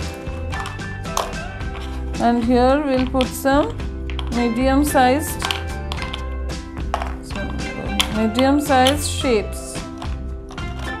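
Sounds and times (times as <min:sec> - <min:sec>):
background music: 0:00.0 - 0:11.0
stones clicking in plastic tray: 0:04.0 - 0:04.4, 0:05.3 - 0:06.3.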